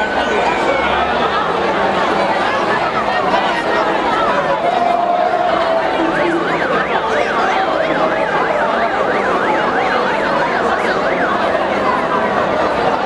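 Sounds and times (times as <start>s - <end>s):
crowd noise: 0.0s - 13.0s
emergency vehicle siren wailing: 0.0s - 13.0s.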